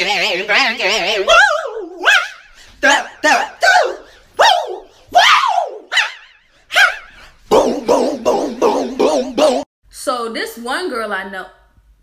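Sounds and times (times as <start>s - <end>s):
short yelping calls: 1.3s - 9.7s.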